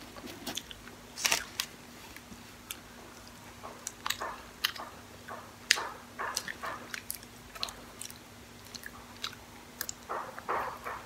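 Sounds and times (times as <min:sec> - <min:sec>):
crisp chewing crackles: 0:00.2 - 0:04.9, 0:05.7 - 0:11.0
mouth clicks: 0:03.7 - 0:11.0.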